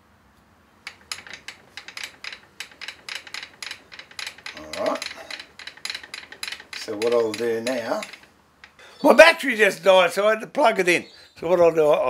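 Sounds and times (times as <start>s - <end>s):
handwheel crank clicking: 0.8s - 9.0s.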